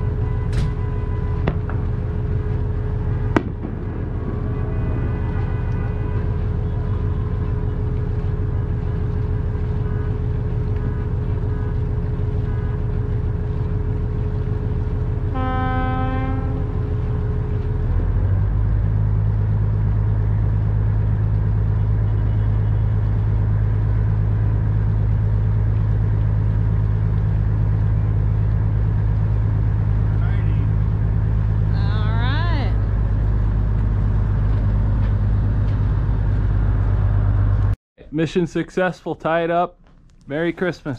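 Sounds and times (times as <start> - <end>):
boat horn: 0.0 - 7.9, 9.7 - 13.2, 15.1 - 18.2, 21.7 - 23.1
boat engine running: 0.0 - 37.8.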